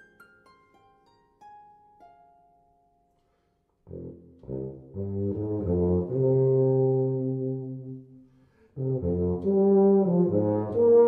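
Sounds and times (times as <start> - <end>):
tuba holding long note: 3.9 - 8.2, 8.8 - 11.0.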